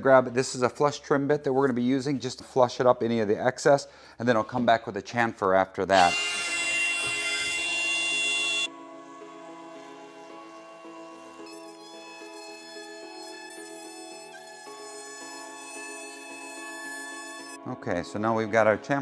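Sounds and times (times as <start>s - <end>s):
background music: 5.8s - 19.0s
router whining: 6.0s - 8.7s.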